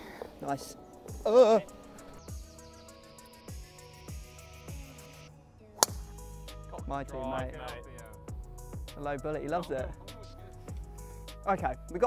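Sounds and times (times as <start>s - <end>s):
background music with steady beat: 0.0s - 12.0s
golf club striking ball: 5.8s - 6.4s.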